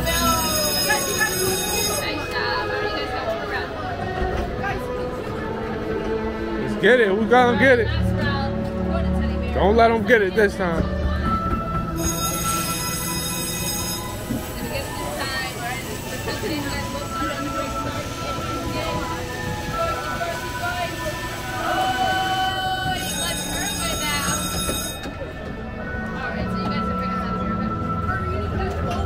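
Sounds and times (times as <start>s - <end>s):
people's voices: 0.0s - 29.0s
held beeping tones: 11.9s - 15.4s, 21.6s - 25.4s.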